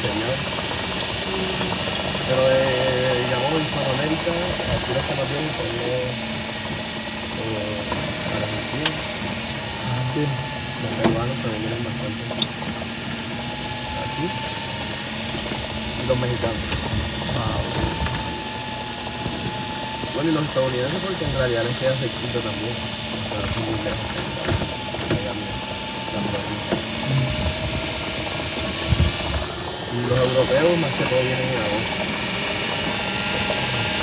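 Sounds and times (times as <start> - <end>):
thin steady whine: 0.0 - 34.0
vehicle low rumble: 0.0 - 34.0.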